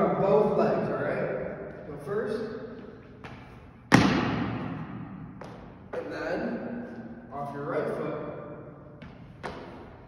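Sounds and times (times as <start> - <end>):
sneaker landing thud on gym floor: 3.2 - 5.6.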